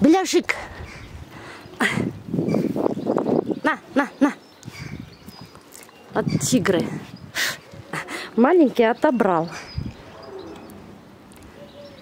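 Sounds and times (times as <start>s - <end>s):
faint low bird calls: 0.6s - 12.0s.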